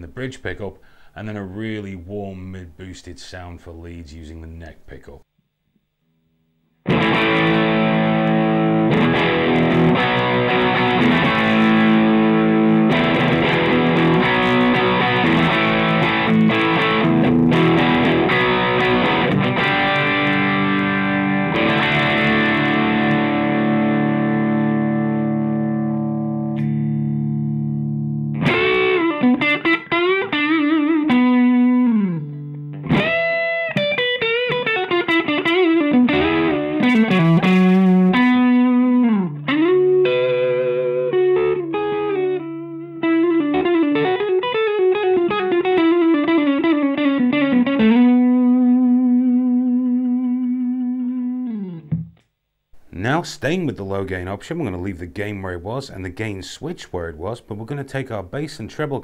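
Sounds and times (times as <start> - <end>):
overdriven electric guitar: 6.8 - 52.9.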